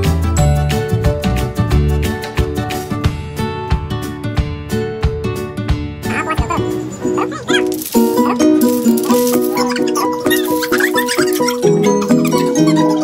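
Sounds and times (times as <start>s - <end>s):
playful bouncy music: 0.0s - 13.0s
high squeaky sliding sounds: 6.1s - 13.0s.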